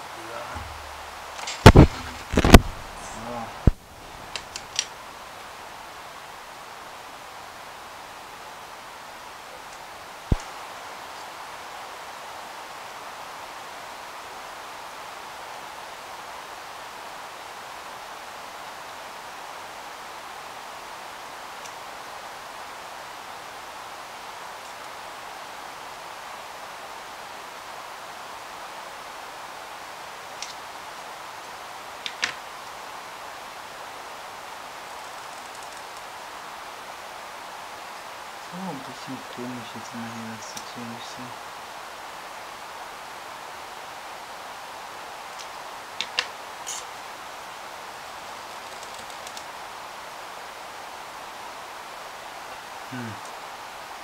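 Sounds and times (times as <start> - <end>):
background hiss: 0.0 - 54.0.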